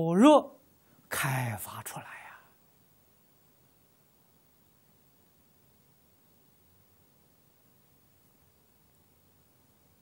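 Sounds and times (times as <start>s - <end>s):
man speaking: 0.0s - 2.4s.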